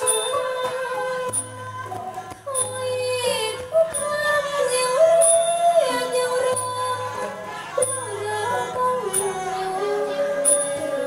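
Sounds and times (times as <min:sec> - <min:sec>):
woman singing through a microphone: 0:00.0 - 0:11.0.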